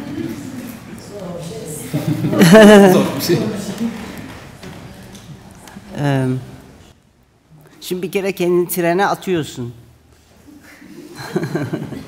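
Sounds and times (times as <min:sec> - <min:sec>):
soft laughter: 0:10.5 - 0:12.0.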